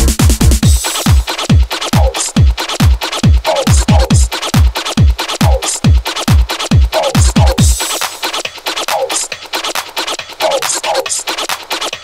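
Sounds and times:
electronic dance music: 0.0s - 12.0s
fast ticking percussion: 0.0s - 12.0s.

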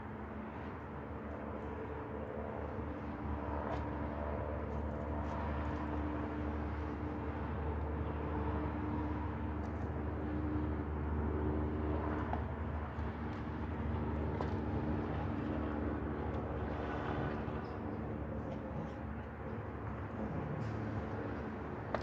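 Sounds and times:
steady motor drone: 0.0s - 22.0s.

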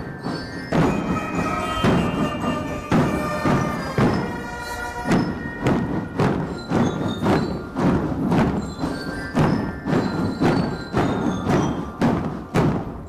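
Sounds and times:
ringing melodic notes: 0.0s - 12.4s
marching drum band: 0.0s - 13.0s.

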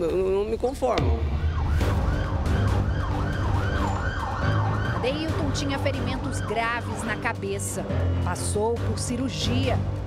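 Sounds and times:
ambulance siren yelping: 1.4s - 7.2s.

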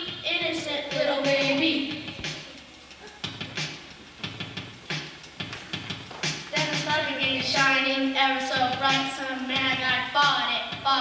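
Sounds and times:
child speaking into a microphone: 0.0s - 2.1s, 6.5s - 11.0s
music: 0.0s - 11.0s.

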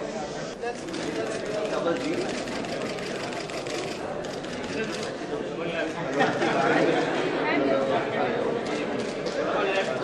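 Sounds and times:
murmur of conversation: 0.0s - 10.0s.

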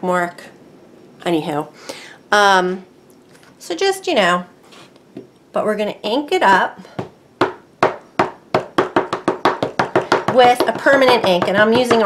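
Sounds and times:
ink pad tapping on stamp: 7.4s - 12.0s.

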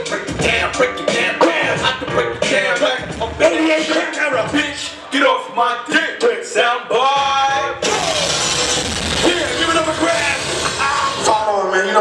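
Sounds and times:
hip-hop track: 0.0s - 12.0s
loud rush of noise: 7.8s - 11.4s.

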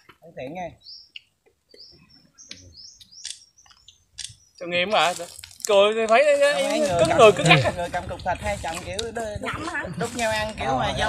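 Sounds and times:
small bird chirping: 0.4s - 5.5s.

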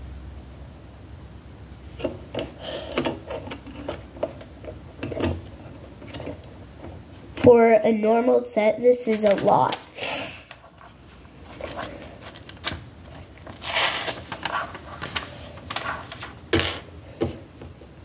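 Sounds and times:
paper pages turning: 9.0s - 16.4s.

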